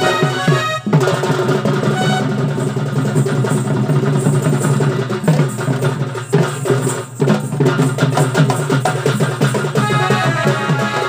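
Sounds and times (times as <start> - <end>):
fast dense drumming: 0.0 - 11.0.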